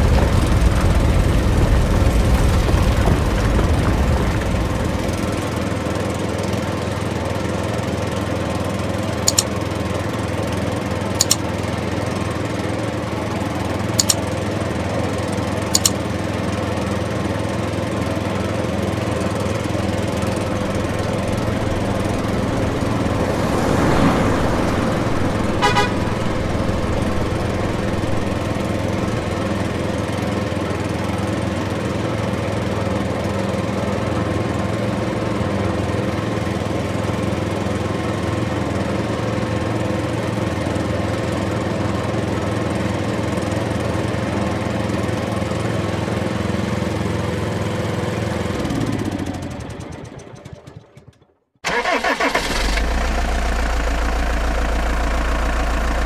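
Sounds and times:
deeper engine idling: 0.0 - 6.4, 18.2 - 33.3, 52.8 - 56.0
motor vehicle engine running: 0.0 - 51.3, 52.8 - 56.0.

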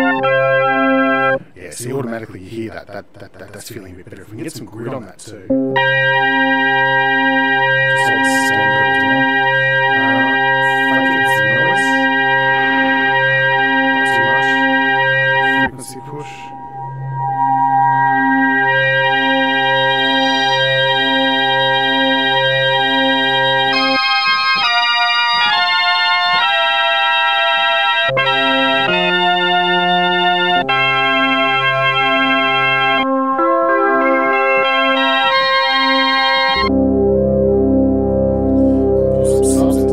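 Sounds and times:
synthesizer organ chords: 0.0 - 39.9
pulsing low synth note: 5.5 - 15.8, 16.5 - 24.0, 36.6 - 39.9.

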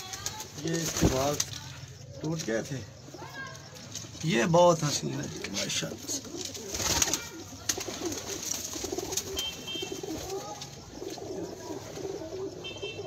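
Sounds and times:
pigeons cooing: 5.0 - 13.0.

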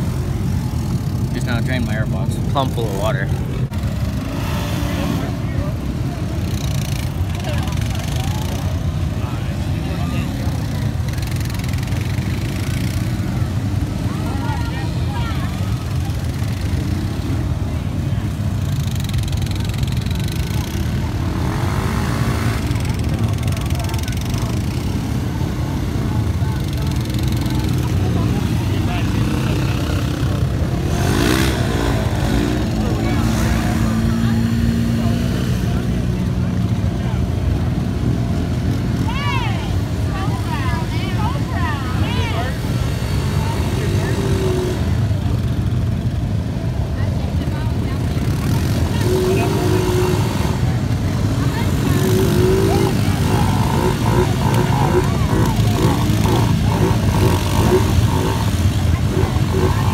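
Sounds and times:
engine revs: 0.0 - 39.4, 40.2 - 46.1, 47.8 - 59.9
atv engines droning: 0.0 - 59.9.

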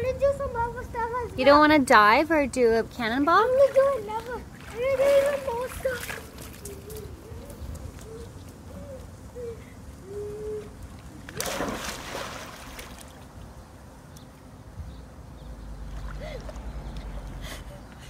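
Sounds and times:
child splashing into pool: 4.5 - 6.6, 11.3 - 13.2
water settling: 11.3 - 13.6.

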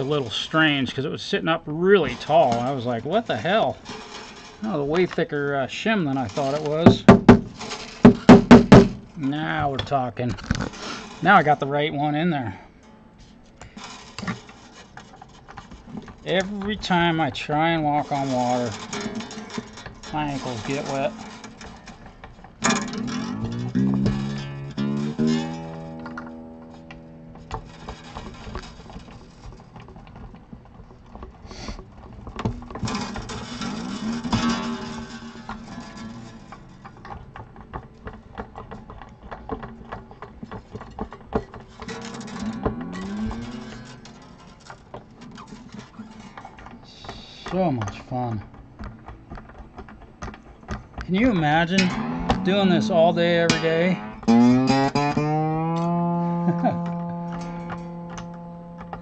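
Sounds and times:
acoustic guitar strings plucked: 0.0 - 59.0
strings clicking and rattling: 0.0 - 59.0.

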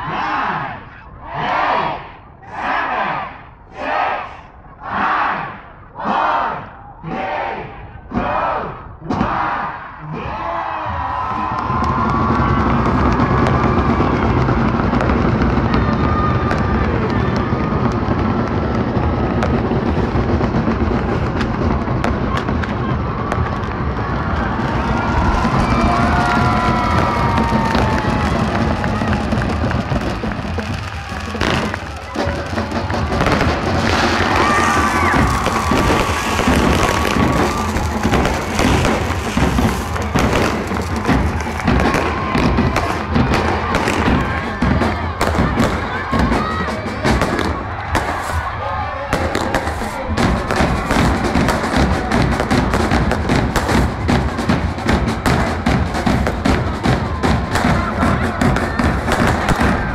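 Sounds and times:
crowd cheering and shouting: 0.0 - 59.9
fireworks popping and crackling: 11.2 - 59.9
music: 17.4 - 59.9.

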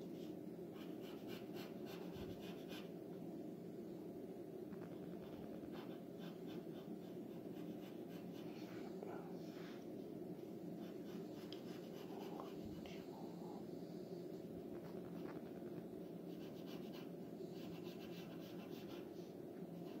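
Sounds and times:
steady low hum: 0.0 - 20.0
pencil scratching on paper: 0.8 - 2.9, 4.8 - 8.6, 10.8 - 12.8, 16.3 - 19.2, 19.8 - 20.0.

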